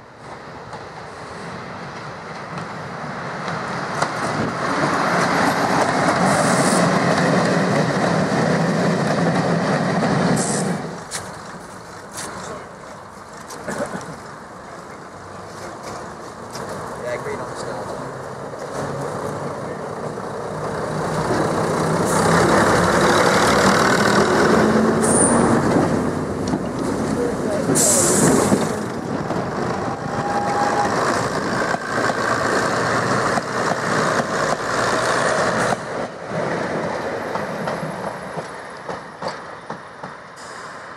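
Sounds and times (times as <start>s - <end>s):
train diesel engines running: 0.0s - 40.9s
air hissing: 27.8s - 28.5s.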